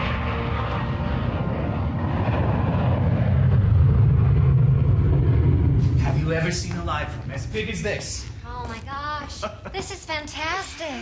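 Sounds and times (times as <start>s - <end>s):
jet airplane passing: 0.0s - 8.4s.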